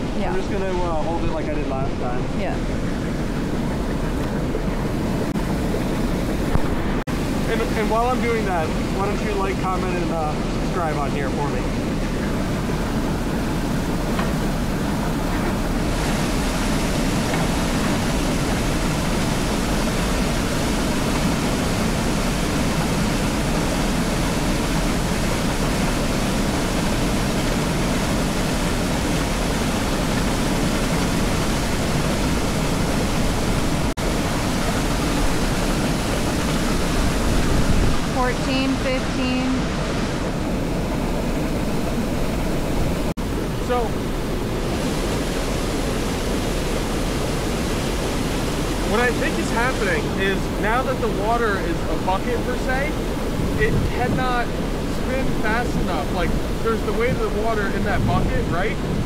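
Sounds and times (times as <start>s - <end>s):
whitewater pouring over spillway: 0.0s - 59.0s.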